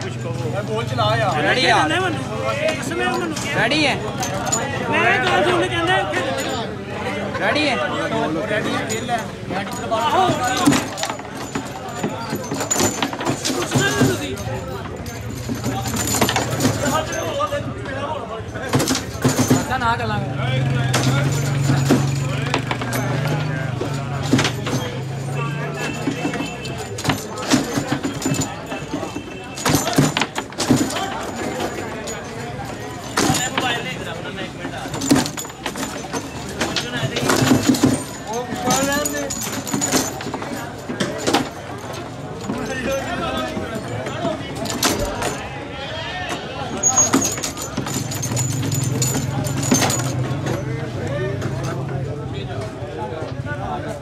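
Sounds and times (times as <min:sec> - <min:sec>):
background chatter: 0:00.0 - 0:54.0
voices of onlookers: 0:00.0 - 0:54.0
foosball ball and players knocking: 0:08.5 - 0:45.6, 0:46.3 - 0:52.8.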